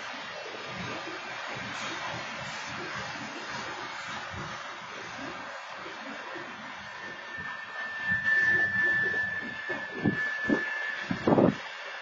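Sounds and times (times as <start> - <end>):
steady high squeal: 0.8 - 12.0.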